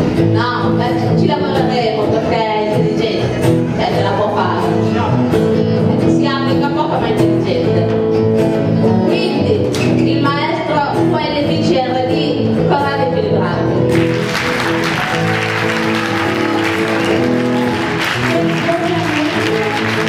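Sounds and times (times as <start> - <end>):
acoustic guitars and double bass: 0.0 - 20.0.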